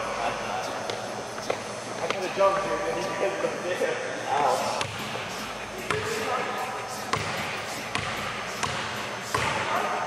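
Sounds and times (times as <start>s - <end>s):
basketball bouncing on gym floor: 5.9s - 6.2s, 7.1s - 9.8s.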